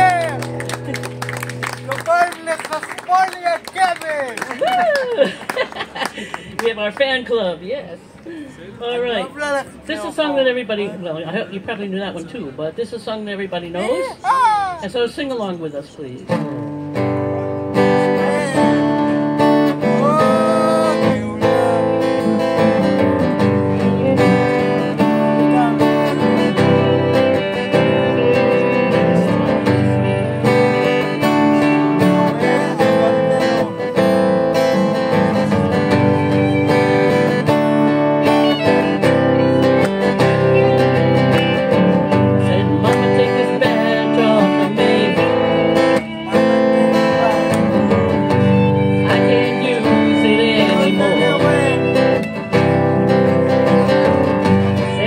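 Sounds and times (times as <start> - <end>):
bass guitar: 0.0 - 2.2, 16.3 - 55.0
strummed acoustic guitar: 16.3 - 55.0
fiddle: 17.4 - 55.0.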